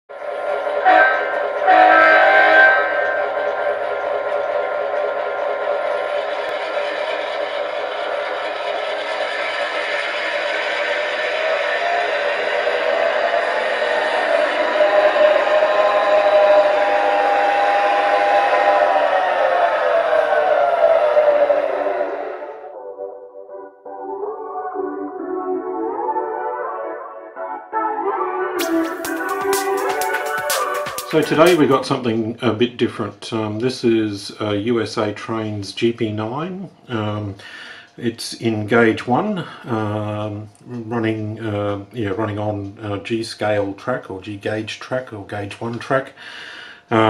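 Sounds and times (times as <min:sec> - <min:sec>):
diesel horn blasts: 0:00.8 - 0:03.8.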